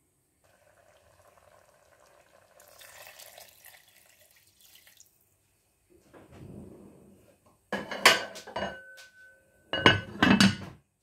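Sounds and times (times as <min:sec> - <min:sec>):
kitchenware clinking: 0:07.7 - 0:10.8.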